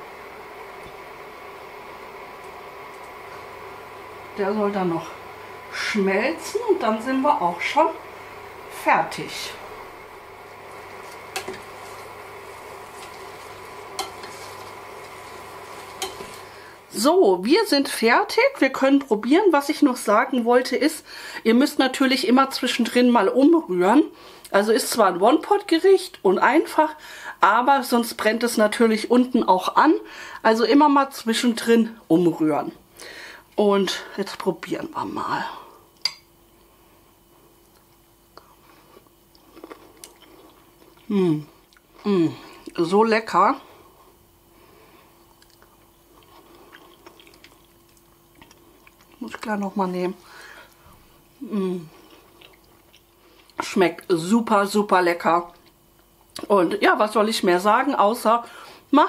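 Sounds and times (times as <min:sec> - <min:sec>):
food sizzling in a pot: 0:00.0 - 0:17.1
spatula stirring: 0:10.6 - 0:16.8
faint chewing: 0:37.6 - 0:42.8, 0:45.2 - 0:49.7, 0:51.9 - 0:53.7.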